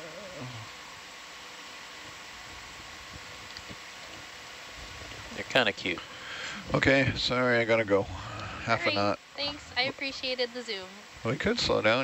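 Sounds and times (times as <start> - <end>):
room tone hiss and hum: 0.0 - 12.0
person's voice: 6.6 - 12.0.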